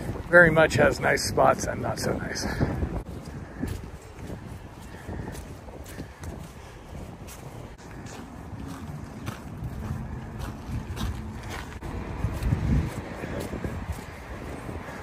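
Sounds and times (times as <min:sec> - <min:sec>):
footsteps on muddy path: 0:00.0 - 0:15.0
wind buffeting microphone: 0:00.0 - 0:15.0.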